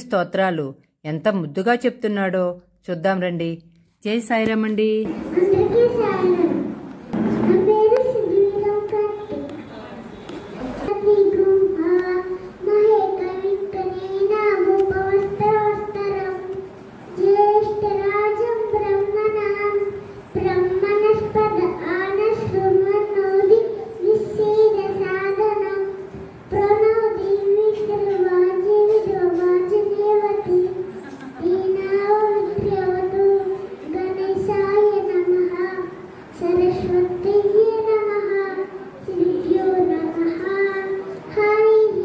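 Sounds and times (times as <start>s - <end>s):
boy singing a hymn: 10.8s - 42.0s.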